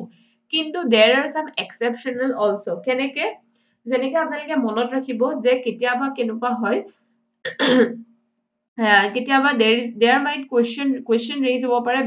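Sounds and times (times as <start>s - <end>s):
person clearing throat: 7.4s - 8.0s.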